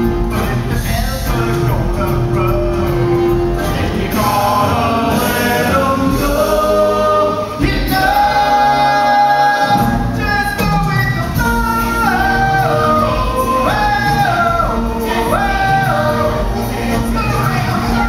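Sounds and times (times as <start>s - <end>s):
band accompaniment: 0.0s - 18.0s
voices singing: 0.0s - 18.0s.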